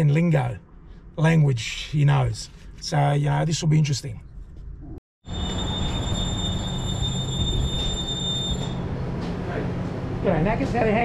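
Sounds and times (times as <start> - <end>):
high-pitched electronic whine: 5.3 - 8.9.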